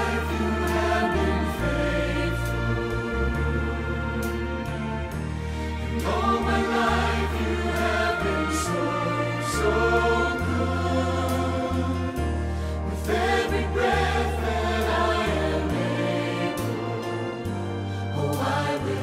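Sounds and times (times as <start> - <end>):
choir singing worship song: 0.0 - 19.0
piano accompaniment: 0.0 - 19.0.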